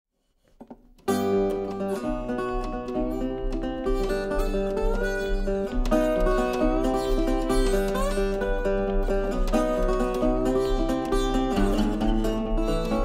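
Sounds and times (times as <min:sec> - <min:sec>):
fingerpicked resonator guitar: 0:00.6 - 0:13.0.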